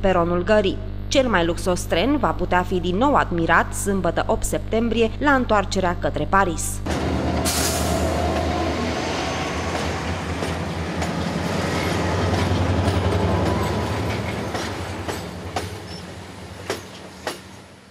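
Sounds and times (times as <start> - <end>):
train wheels rumbling on rails: 6.9 - 17.9
wheels clicking over rail joints: 9.7 - 17.7.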